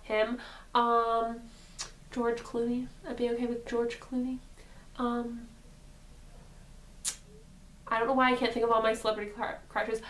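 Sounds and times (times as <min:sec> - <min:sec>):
woman's voice: 0:00.0 - 0:01.5, 0:02.1 - 0:05.6, 0:07.9 - 0:10.0.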